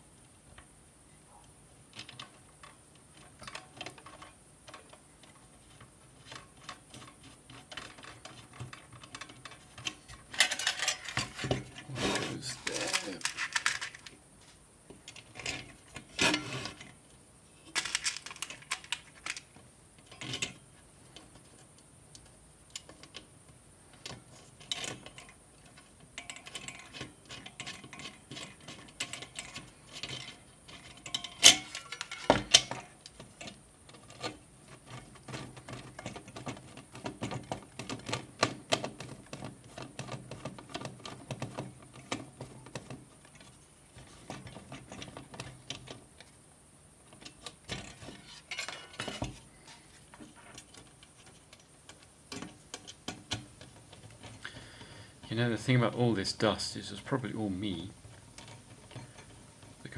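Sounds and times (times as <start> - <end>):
metal bolts rattling on plastic: 1.9 - 11.9, 12.6 - 14.2, 17.7 - 21.6, 24.0 - 46.4, 47.0 - 59.9.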